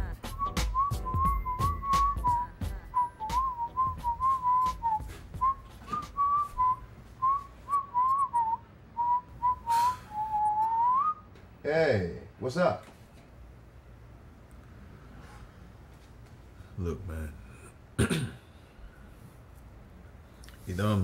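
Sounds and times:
person whistling a tune: 0.2s - 11.3s.

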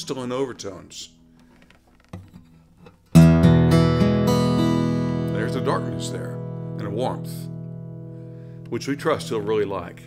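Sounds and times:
acoustic guitar strings ringing: 2.1s - 10.0s.

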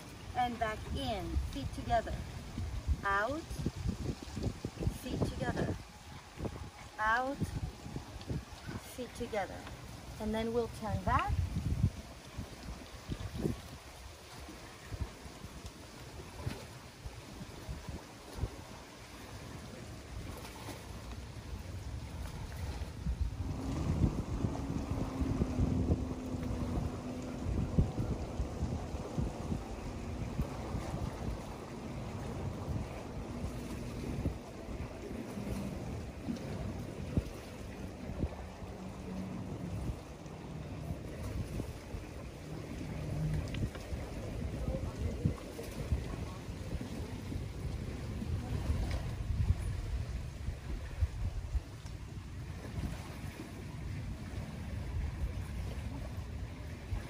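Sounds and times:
motorboat engine drone: 0.0s - 57.0s
wind buffeting microphone: 0.0s - 57.0s.

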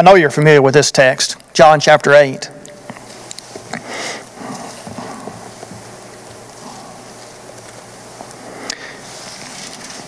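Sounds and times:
book pages rustling: 9.0s - 10.0s.

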